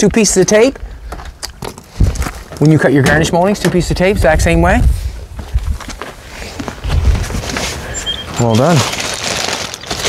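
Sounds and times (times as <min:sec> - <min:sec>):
rustling and handling noises: 0:05.4 - 0:10.0.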